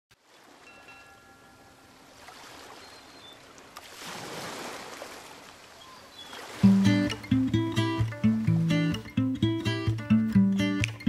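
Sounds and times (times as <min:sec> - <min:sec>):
flowing water rushing: 0:00.2 - 0:08.8.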